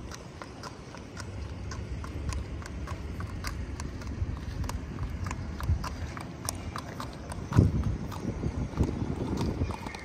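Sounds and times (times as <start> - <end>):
horse hooves on gravel: 0.0 - 10.0.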